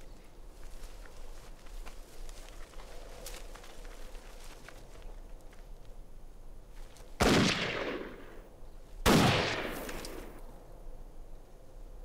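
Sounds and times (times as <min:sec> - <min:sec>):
rifle shots echoing: 0:07.2 - 0:08.4, 0:09.0 - 0:10.4.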